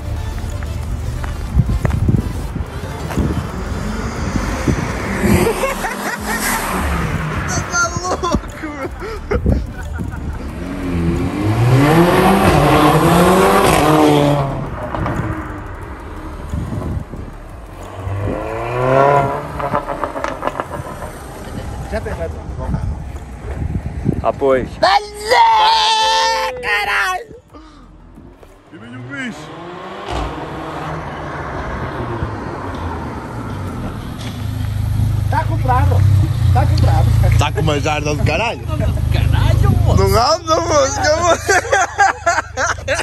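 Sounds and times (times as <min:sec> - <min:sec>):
car engine accelerating hard: 0:02.7 - 0:24.1, 0:27.8 - 0:41.4.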